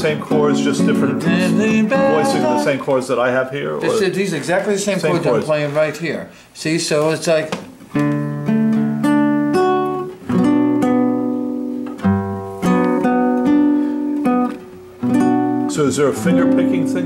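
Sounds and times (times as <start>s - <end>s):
classical guitar chords: 0.0s - 3.0s, 7.8s - 17.0s.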